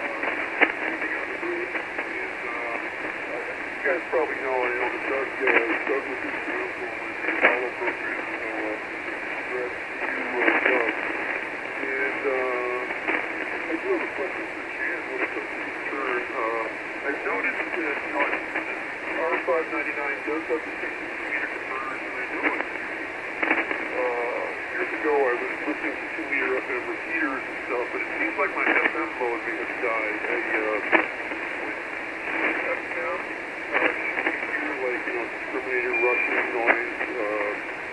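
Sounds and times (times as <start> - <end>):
thin radio voice through speaker: 0.0 - 11.1, 11.8 - 13.0, 13.6 - 22.7, 23.8 - 37.6
steady radio band hiss: 0.0 - 37.9.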